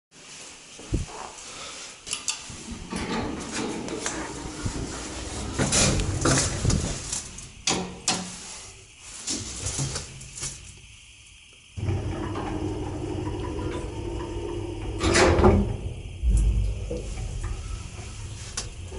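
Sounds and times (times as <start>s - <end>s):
elevator machinery humming: 2.7s - 8.0s, 11.0s - 18.9s.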